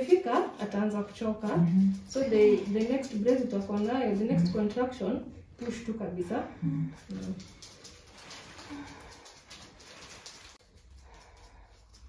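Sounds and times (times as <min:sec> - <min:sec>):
woman moaning low: 0:06.6 - 0:07.0.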